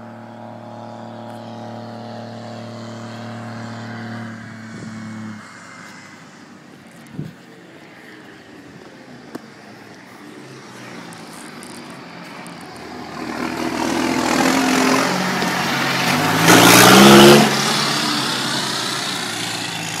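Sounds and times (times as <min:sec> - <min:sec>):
tractor diesel engine passing: 0:00.0 - 0:06.6, 0:10.4 - 0:20.0.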